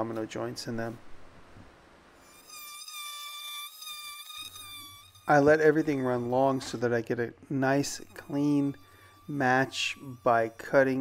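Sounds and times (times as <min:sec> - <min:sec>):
oscillating multi-tool buzzing: 0:02.2 - 0:06.9, 0:07.7 - 0:11.0.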